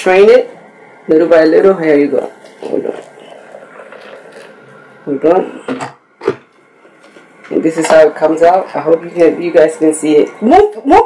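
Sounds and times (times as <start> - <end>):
milk pouring and splashing: 2.5 - 4.8.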